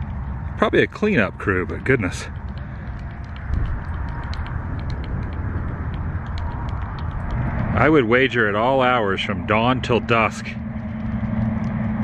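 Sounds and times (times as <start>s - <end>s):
light irregular clicks: 0.0s - 12.0s
wind buffeting microphone: 0.0s - 12.0s.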